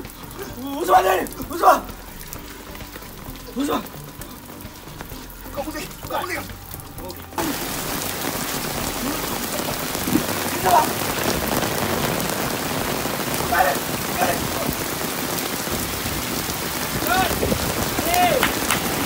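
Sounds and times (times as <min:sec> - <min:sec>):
faint voices: 0:00.0 - 0:11.6
steady rain falling: 0:00.0 - 0:19.0.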